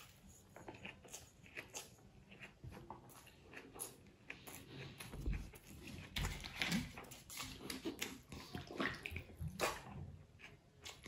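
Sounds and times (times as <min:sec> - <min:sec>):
wet chewing: 0:00.0 - 0:11.0.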